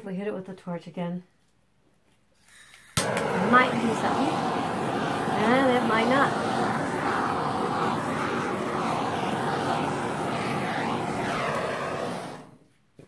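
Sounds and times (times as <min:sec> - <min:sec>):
torch flame hissing: 0:02.9 - 0:12.6.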